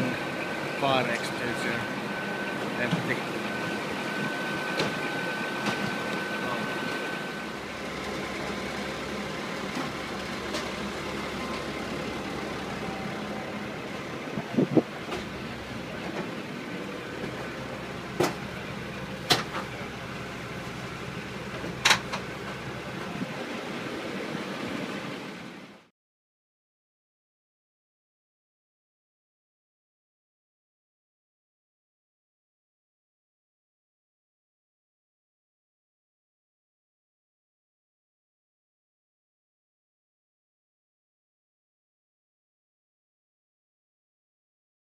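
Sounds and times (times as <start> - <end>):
engine idling: 0.0 - 25.9.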